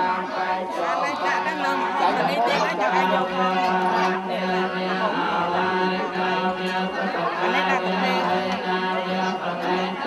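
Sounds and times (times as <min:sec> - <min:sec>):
many voices chanting: 0:00.0 - 0:10.0
people talking: 0:00.0 - 0:10.0.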